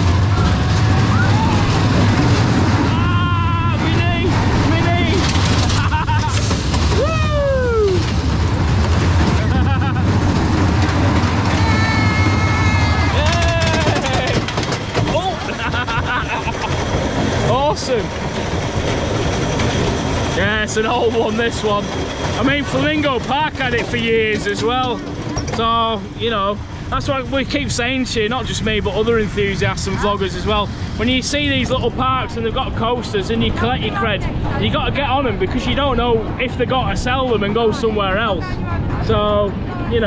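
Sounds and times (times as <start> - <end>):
riders whooping: 0.0 - 8.4, 9.2 - 17.8
roller coaster rumble: 0.0 - 40.0.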